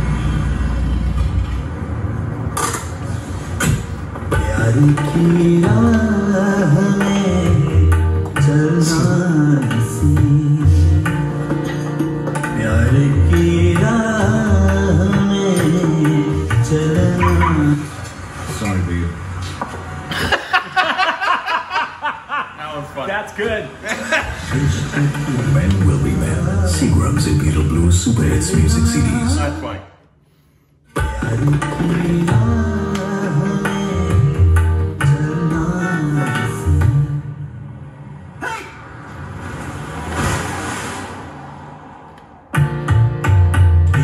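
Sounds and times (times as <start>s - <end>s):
vehicle passing rumble and whoosh: 0.0s - 4.3s, 17.2s - 20.1s, 37.1s - 43.1s
voice holding pitched notes: 17.0s - 17.8s.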